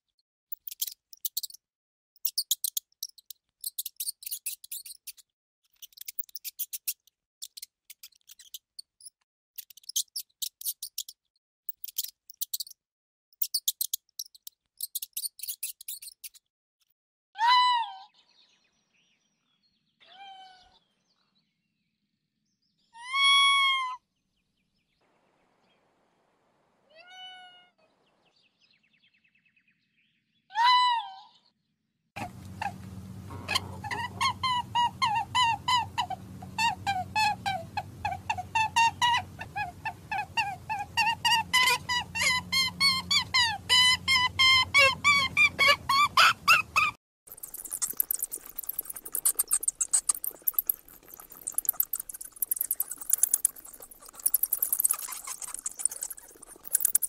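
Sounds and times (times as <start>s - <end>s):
mewing animal calls: 32.2s - 57.0s
rapid clicks: 47.3s - 57.0s.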